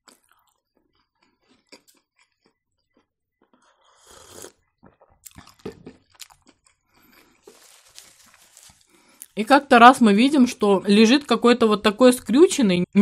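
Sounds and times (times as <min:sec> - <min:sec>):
soft chewing: 0:00.0 - 0:09.4
sipping tea: 0:03.4 - 0:09.4.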